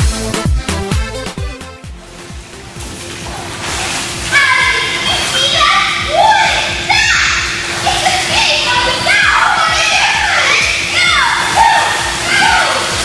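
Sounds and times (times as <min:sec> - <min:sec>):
child shouting excitedly: 0:04.3 - 0:13.0.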